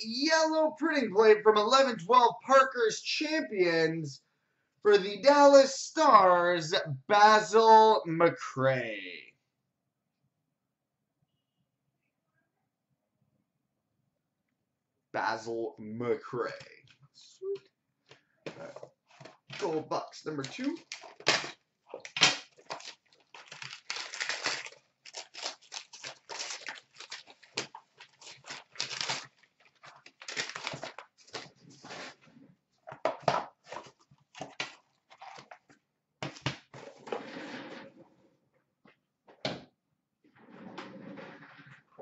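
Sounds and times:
wrapping paper tearing and crumpling: 0:19.6 - 0:32.2.

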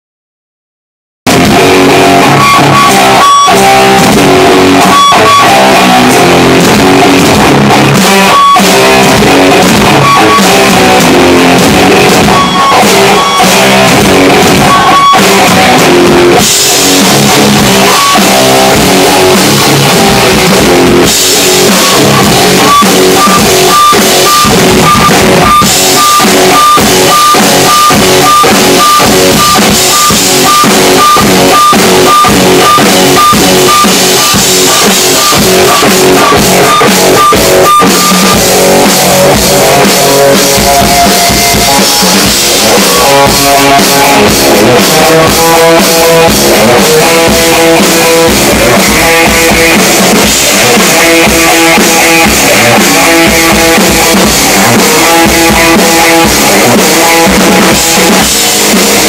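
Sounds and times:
rock electric guitar and drums: 0:01.2 - 0:59.0
repeating high note: 0:01.3 - 0:58.3.

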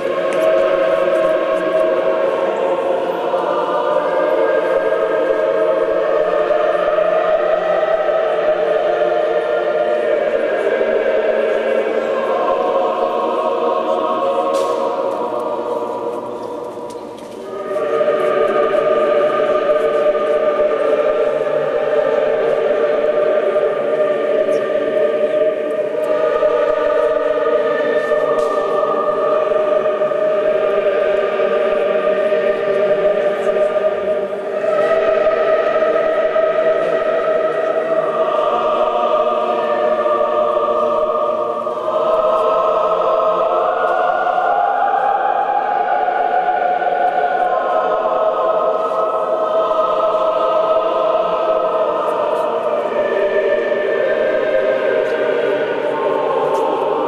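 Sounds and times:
choir singing liturgical chant: 0:00.0 - 0:57.0.

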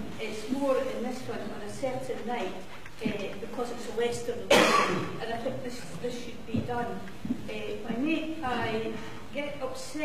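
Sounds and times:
woman speaking: 0:00.0 - 0:10.0
loud cough: 0:04.5 - 0:05.2.

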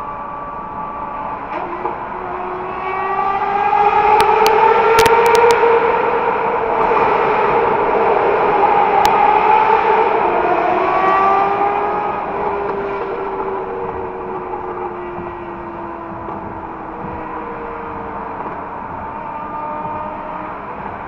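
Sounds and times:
motorcycle engine cruising: 0:00.1 - 0:21.0.

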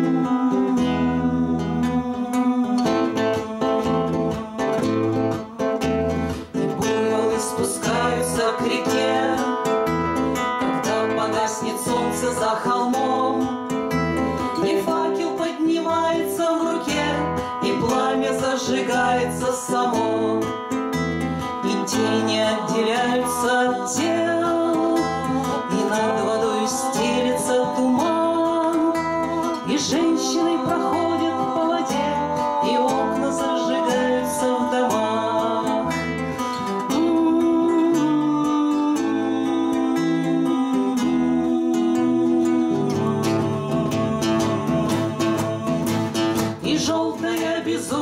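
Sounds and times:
women singing together: 0:00.0 - 0:20.8, 0:21.4 - 0:48.0
acoustic guitars strummed: 0:00.0 - 0:48.0.

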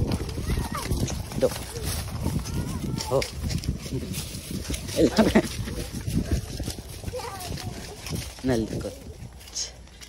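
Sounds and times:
people's voices: 0:00.0 - 0:09.8
horse hooves on grass: 0:00.0 - 0:10.0.

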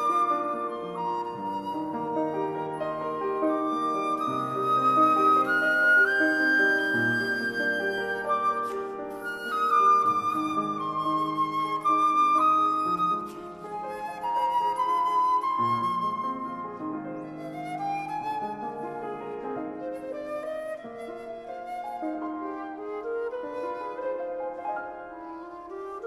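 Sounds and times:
piano accompaniment: 0:00.0 - 0:26.0
wooden flute melody: 0:00.0 - 0:26.0.

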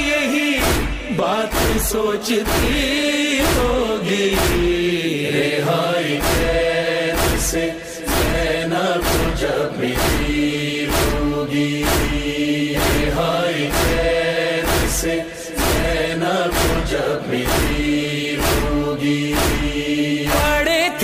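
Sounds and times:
man chanting: 0:00.0 - 0:05.9, 0:20.2 - 0:21.0
heavy rhythmic chest-beating thumps: 0:00.0 - 0:21.0.

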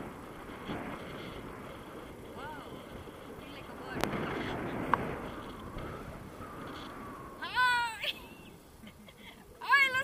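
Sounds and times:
faint wind noise: 0:00.0 - 0:10.0.

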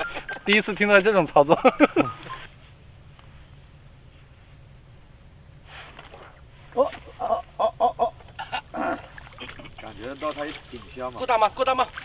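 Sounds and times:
person laughing: 0:00.0 - 0:00.6, 0:01.5 - 0:02.5, 0:07.2 - 0:09.9
low outdoor background noise: 0:00.0 - 0:12.0.

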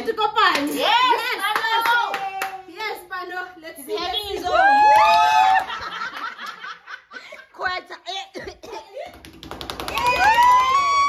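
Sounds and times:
hand claps: 0:00.4 - 0:00.8, 0:01.5 - 0:02.6, 0:09.1 - 0:11.0
excited voices whooping: 0:04.3 - 0:05.9, 0:09.9 - 0:11.0.

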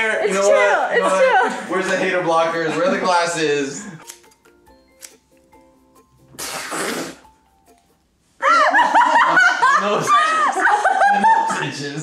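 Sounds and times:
loud high-pitched laughter: 0:08.4 - 0:11.6.

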